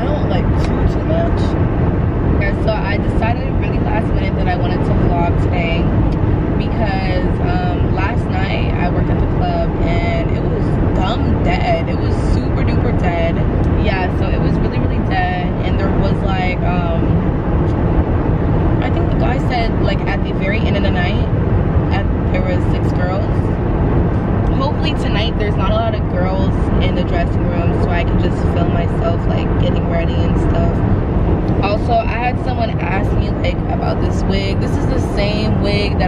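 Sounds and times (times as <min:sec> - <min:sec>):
woman talking: 0:00.0 - 0:01.6, 0:02.3 - 0:17.2, 0:18.8 - 0:23.6, 0:24.4 - 0:30.9, 0:31.5 - 0:36.0
road and engine rumble: 0:00.0 - 0:36.0.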